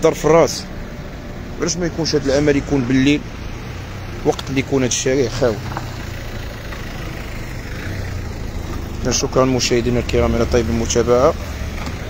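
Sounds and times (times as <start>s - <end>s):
car engine running: 0.0s - 12.0s
street noise: 0.0s - 12.0s.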